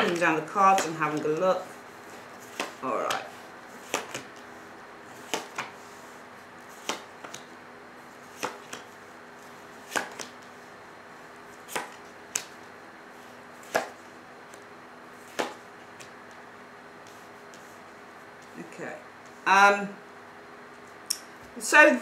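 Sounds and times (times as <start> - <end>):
cards snapping on a table: 2.5 - 3.3, 3.9 - 4.4, 5.2 - 5.8, 6.8 - 7.5, 8.4 - 8.9, 9.9 - 10.5, 11.7 - 12.6, 13.7 - 14.0, 15.3 - 16.2.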